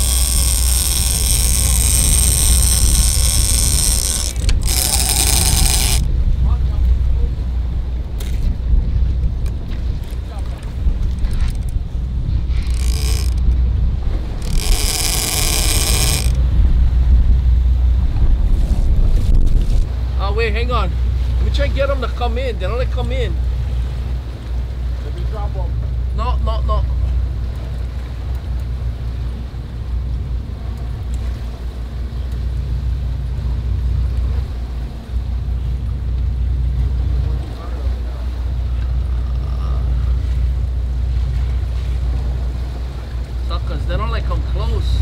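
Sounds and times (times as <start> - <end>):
high-pitched mechanical buzzing: 0.0 - 6.1, 12.4 - 16.5
boat engine rumble: 0.0 - 45.0.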